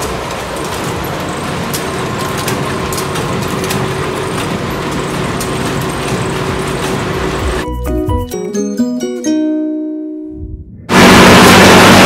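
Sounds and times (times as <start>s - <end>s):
machines running: 0.0s - 7.6s, 10.7s - 12.0s.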